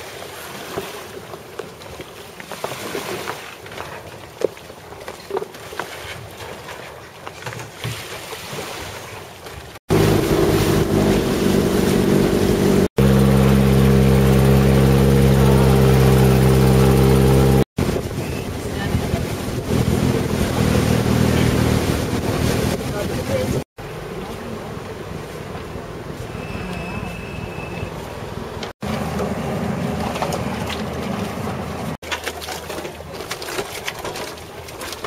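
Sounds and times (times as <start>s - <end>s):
water noise: 0.0s - 35.0s
wind: 0.0s - 35.0s
boat engine droning: 9.9s - 32.0s.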